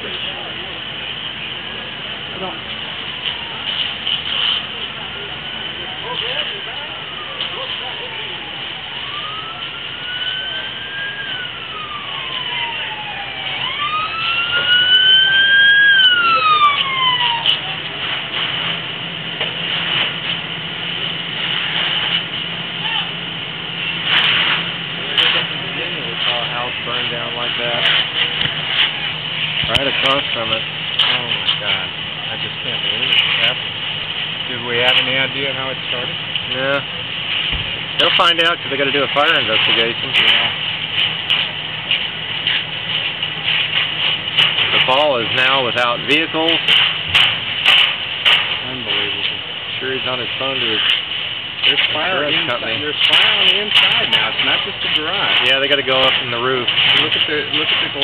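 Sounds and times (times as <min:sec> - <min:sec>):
steady engine hum: 0:00.0 - 0:58.0
siren wailing: 0:05.1 - 0:17.9
sharp knocks and pops: 0:37.4 - 0:37.8, 0:46.5 - 0:49.4.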